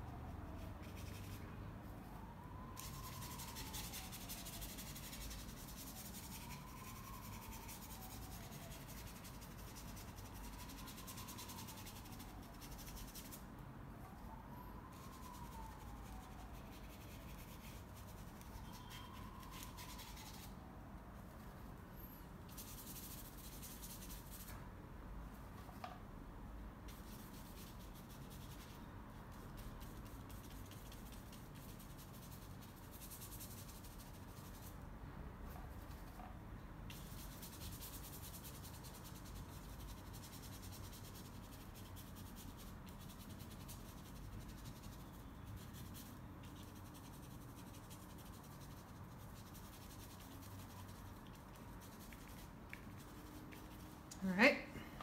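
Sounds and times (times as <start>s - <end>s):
faint high tone rising and falling: 0.0s - 9.2s, 13.8s - 20.9s
paintbrush rubbing on canvas: 36.9s - 54.1s.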